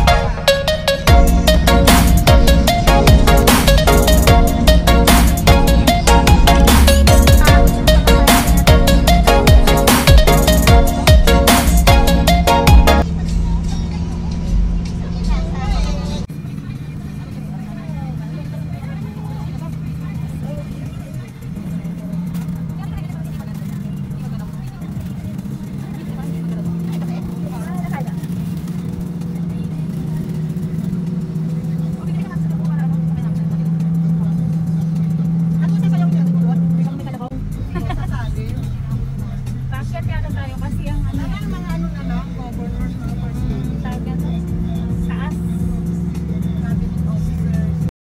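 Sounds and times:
background music: 0.0 - 47.9
road noise: 0.0 - 47.9
vehicle engine drone: 0.0 - 47.9.

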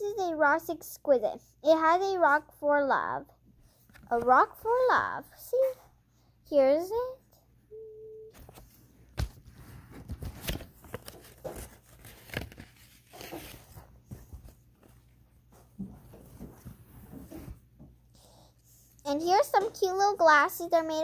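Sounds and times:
hands rustling paper: 8.4 - 15.2.

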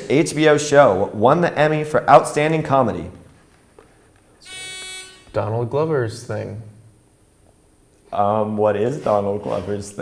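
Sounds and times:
game show buzzer: 4.4 - 5.5.

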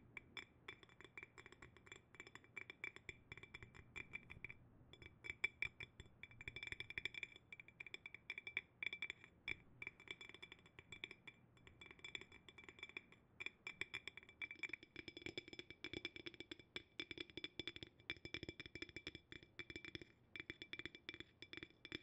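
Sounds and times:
fingertips tapping glass jar: 0.1 - 22.0.

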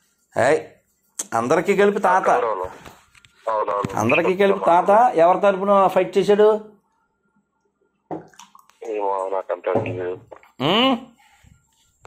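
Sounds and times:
person speaking: 0.3 - 6.8, 8.7 - 11.2.

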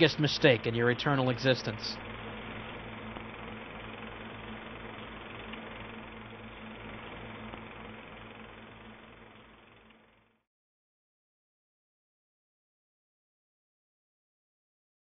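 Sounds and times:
low hum: 0.0 - 10.4.

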